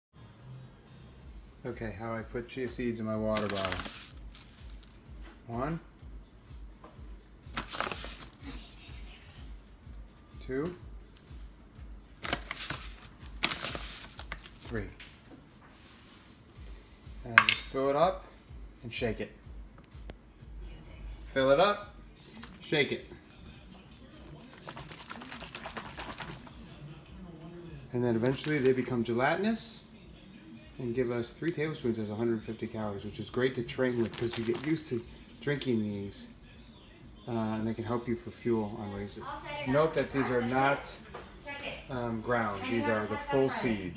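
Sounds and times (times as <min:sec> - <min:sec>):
bag crinkling: 0:03.3 - 0:05.0, 0:07.6 - 0:08.4, 0:12.2 - 0:14.9, 0:22.3 - 0:22.7, 0:24.1 - 0:26.5, 0:33.9 - 0:34.9
seeds rustling: 0:03.3 - 0:05.0, 0:07.6 - 0:08.4, 0:12.2 - 0:14.9, 0:22.3 - 0:26.5, 0:33.9 - 0:34.8
spoon digging into plastic pouch: 0:03.4 - 0:05.0, 0:07.6 - 0:08.4, 0:12.2 - 0:14.7, 0:24.2 - 0:26.5, 0:33.9 - 0:34.7
water sloshing in shaken bottle: 0:24.2 - 0:26.6.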